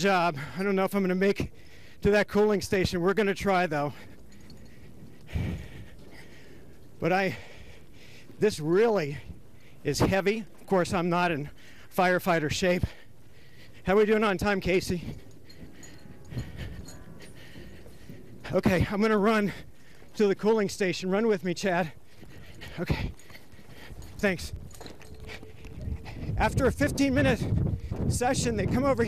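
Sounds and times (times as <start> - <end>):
man's heavy breath out: 1.5 - 2.0, 3.9 - 8.4, 11.5 - 12.0, 12.8 - 13.9, 15.0 - 18.5, 21.9 - 26.4
footsteps on steel stairs: 12.7 - 29.0.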